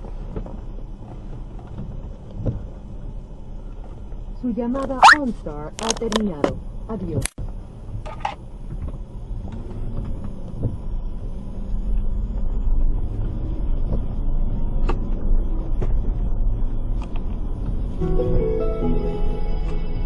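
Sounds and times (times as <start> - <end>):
car engine and tyres on wet road: 0.0 - 18.0.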